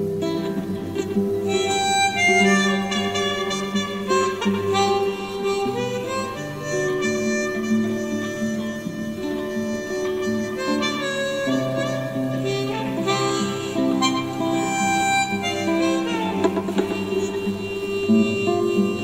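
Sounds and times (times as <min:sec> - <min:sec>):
blues guitar accompaniment: 0:00.0 - 0:19.0
harmonica long notes: 0:00.0 - 0:19.0.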